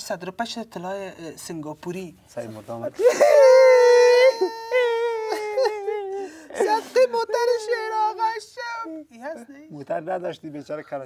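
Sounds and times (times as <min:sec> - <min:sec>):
person wailing a lament: 0:03.0 - 0:09.1.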